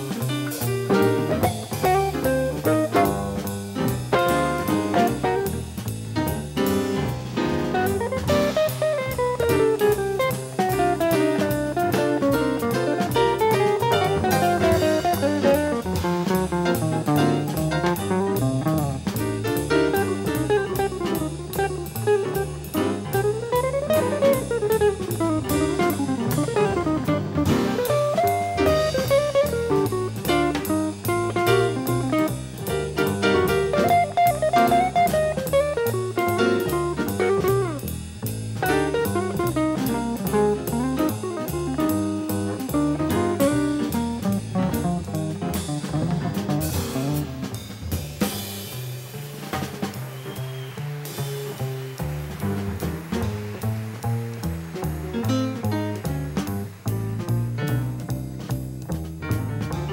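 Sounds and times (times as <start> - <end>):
jazz combo playing: 0.0 - 59.9.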